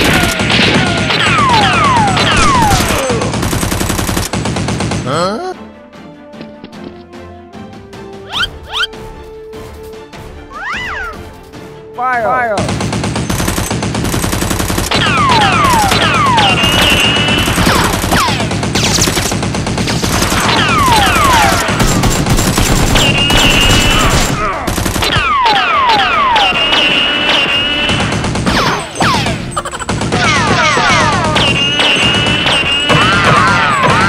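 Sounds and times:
background music: 1.2s - 34.0s
automatic gunfire bursts: 12.6s - 25.6s.

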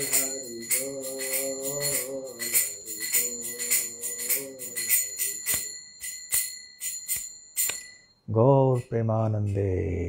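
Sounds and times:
hand cymbals chinking: 0.0s - 10.0s.

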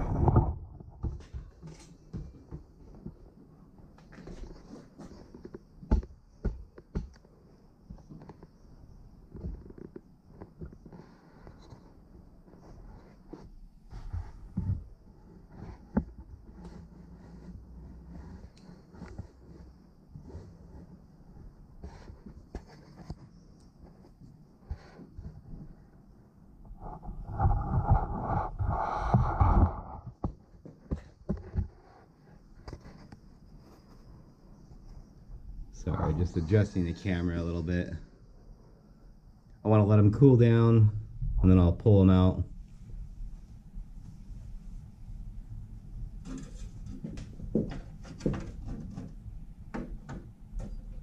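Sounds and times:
rustling: 0.0s - 26.1s.

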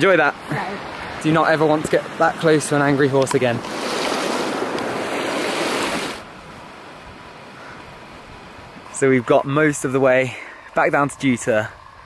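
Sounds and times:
stream rushing over rocks: 0.0s - 6.4s
faint wind hiss: 0.0s - 12.0s.

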